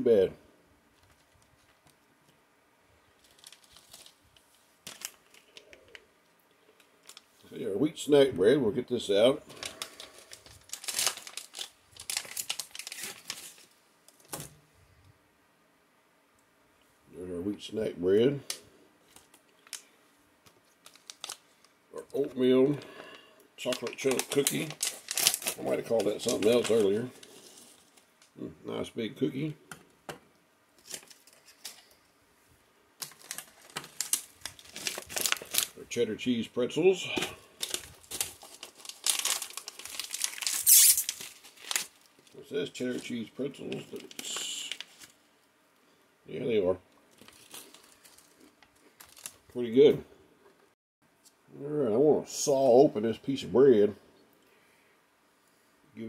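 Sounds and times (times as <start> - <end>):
food pouch tearing and crinkling: 3.2 - 4.2, 4.9 - 6.0, 9.5 - 14.4, 20.7 - 21.6, 23.6 - 28.1, 30.8 - 31.9, 33.0 - 35.8, 37.6 - 43.1, 43.7 - 45.2, 47.1 - 49.5.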